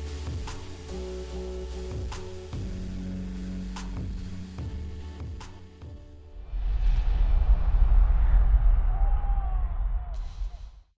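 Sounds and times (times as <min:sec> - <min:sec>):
deep cinematic rumble: 0:06.3 - 0:10.7.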